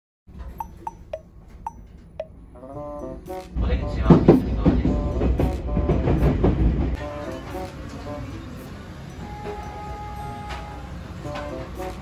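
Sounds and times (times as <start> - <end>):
music with steady beat: 0.6 - 2.3
train rumbling: 3.5 - 12.0.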